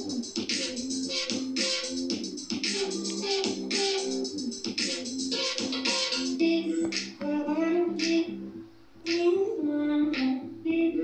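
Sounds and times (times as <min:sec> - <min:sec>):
instrumental music with steady beat: 0:00.0 - 0:07.2.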